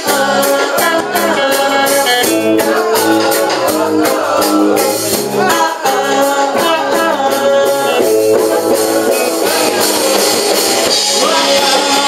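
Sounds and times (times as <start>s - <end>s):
man singing: 0.0s - 12.0s
punk rock band playing: 0.0s - 12.0s.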